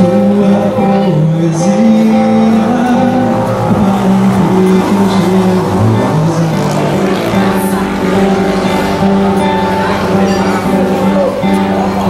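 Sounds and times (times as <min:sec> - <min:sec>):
acoustic guitar: 0:00.0 - 0:12.0
man singing: 0:00.0 - 0:12.0.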